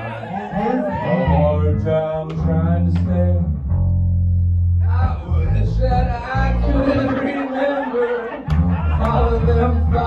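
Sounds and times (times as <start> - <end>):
deep held bass notes: 0.9 - 10.0.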